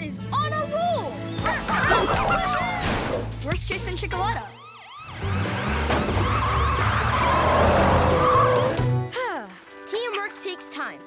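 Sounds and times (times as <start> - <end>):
tyre skid screech: 5.2 - 8.9.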